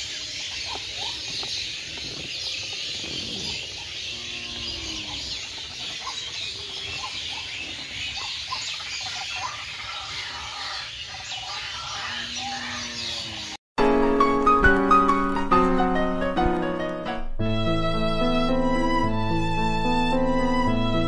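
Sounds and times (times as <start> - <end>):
many birds chirping: 0.0 - 13.6.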